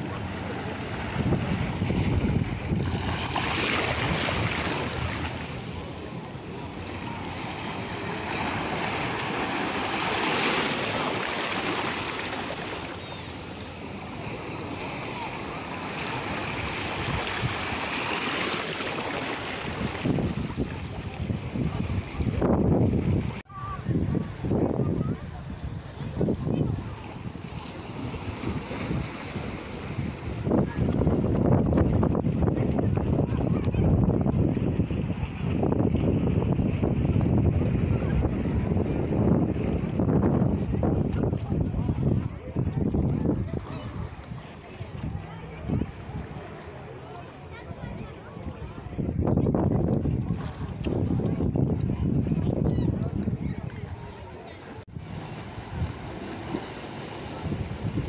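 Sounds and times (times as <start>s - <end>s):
wind rumble on microphone: 0.0s - 10.1s, 19.5s - 46.5s, 47.6s - 58.0s
small waves washing over rock: 0.4s - 22.4s, 54.8s - 58.0s.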